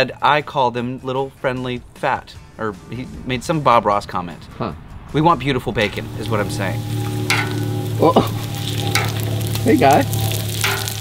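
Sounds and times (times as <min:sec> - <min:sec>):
bacon sizzling on a griddle: 0:06.0 - 0:11.0.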